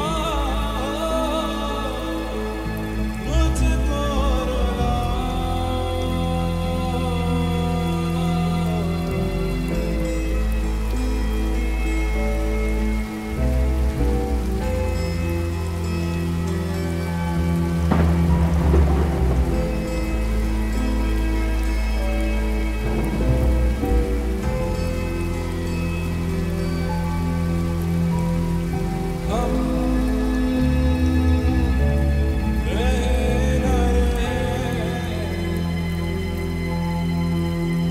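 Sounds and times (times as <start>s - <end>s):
slow lofi music with deep bass: 0.0s - 37.9s
steady rain: 0.0s - 37.9s
thunder rumbling: 16.3s - 25.6s.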